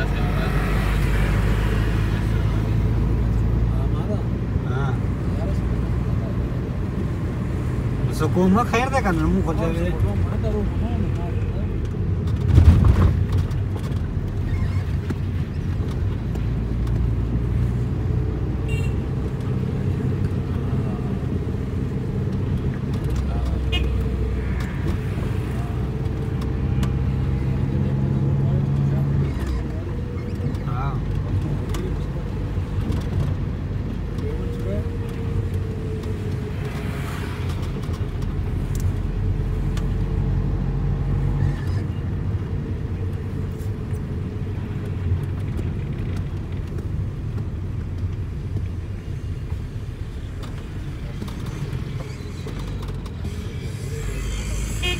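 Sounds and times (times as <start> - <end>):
car engine and road drone: 0.0 - 54.9.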